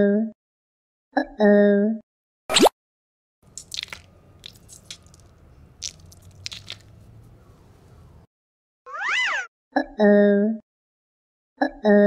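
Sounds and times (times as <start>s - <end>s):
crackling stress ball squeezing: 3.5s - 7.0s.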